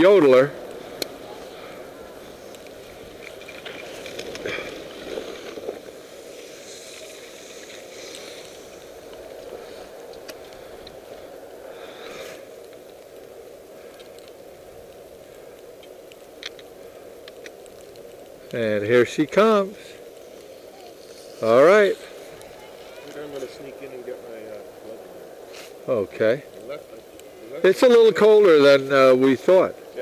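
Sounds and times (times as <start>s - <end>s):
skis sliding on snow: 0.0s - 15.5s, 16.9s - 30.0s
ski edges scraping: 0.1s - 12.6s, 19.4s - 24.6s, 25.4s - 25.8s.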